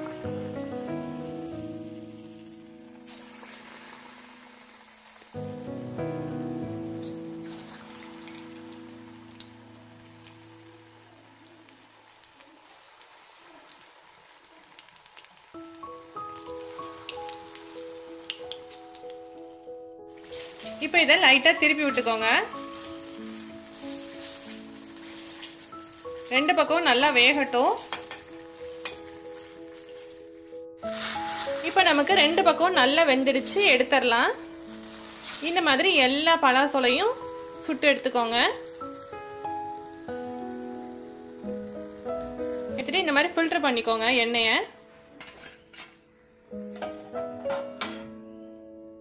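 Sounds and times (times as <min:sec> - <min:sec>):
background music chords: 0:00.0 - 0:11.0, 0:15.6 - 0:49.0
oil sizzling: 0:00.0 - 0:48.2.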